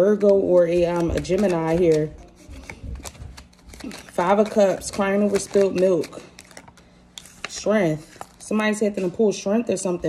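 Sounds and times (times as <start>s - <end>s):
cards shuffled by hand: 0.2s - 8.4s.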